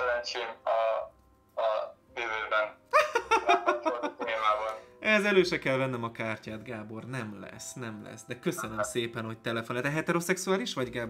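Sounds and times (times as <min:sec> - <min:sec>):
man talking: 0:00.0 - 0:02.8, 0:03.8 - 0:11.0.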